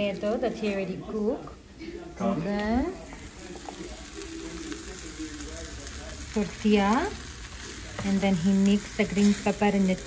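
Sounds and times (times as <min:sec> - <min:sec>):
food sizzling on griddle: 0:00.0 - 0:01.4, 0:02.2 - 0:10.0.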